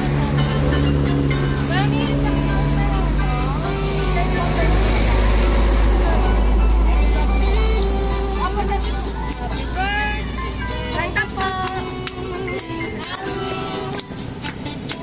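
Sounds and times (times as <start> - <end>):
voices: 0.0 - 14.9
heavy vehicle passing: 0.0 - 15.0
music: 0.0 - 15.0
road traffic rumble: 0.0 - 15.0.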